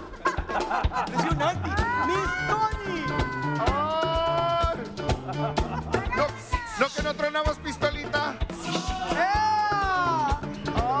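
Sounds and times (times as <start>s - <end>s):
background music with a beat: 0.0s - 11.0s.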